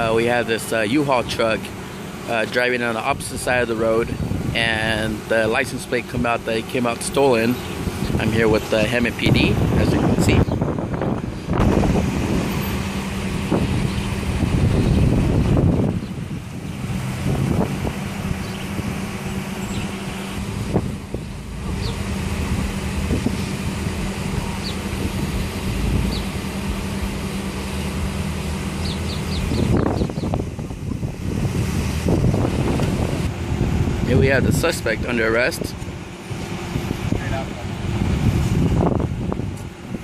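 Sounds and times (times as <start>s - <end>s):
street traffic: 0.0s - 40.0s
vehicle engine idling: 0.0s - 40.0s
wind buffeting microphone: 3.0s - 6.5s, 7.4s - 40.0s.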